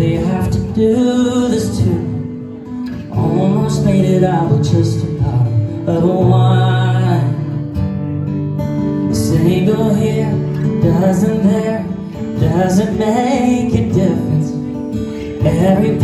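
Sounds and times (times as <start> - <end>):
person singing: 0.0 - 7.9, 9.0 - 16.0
acoustic guitar playing: 0.0 - 16.0.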